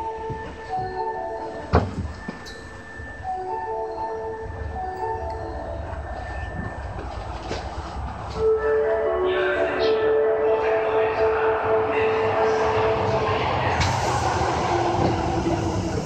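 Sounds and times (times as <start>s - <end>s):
subway train rumble: 0.0s - 16.0s
marimba-like chime melody: 0.7s - 7.1s.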